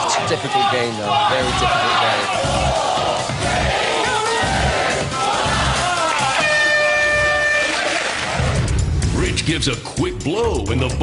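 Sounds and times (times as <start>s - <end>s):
game-show music with a beat: 0.0s - 11.0s
electronic buzzer: 6.4s - 7.9s.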